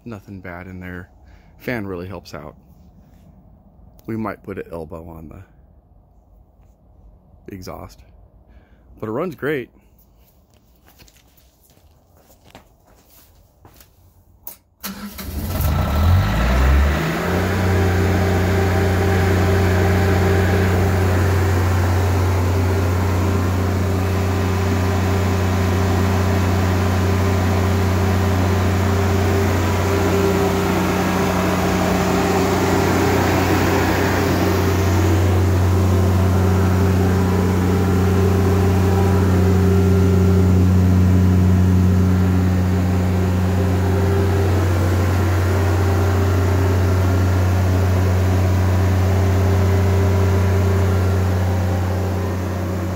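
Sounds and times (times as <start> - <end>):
diesel generator cranking and running: 14.6 - 52.9.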